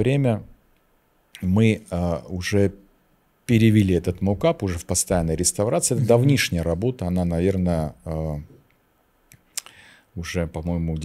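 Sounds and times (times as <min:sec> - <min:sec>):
man speaking: 0:00.0 - 0:00.6, 0:01.4 - 0:02.9, 0:03.5 - 0:08.6, 0:10.2 - 0:11.0.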